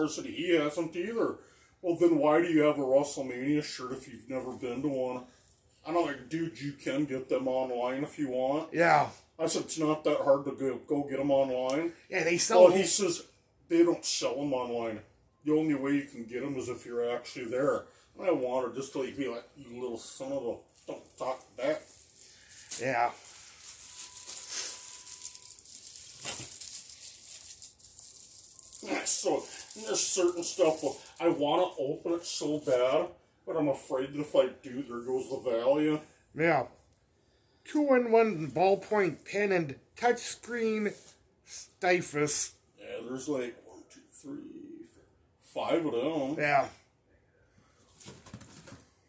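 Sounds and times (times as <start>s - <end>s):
packaging rattling and rustling: 20.8s - 31.2s.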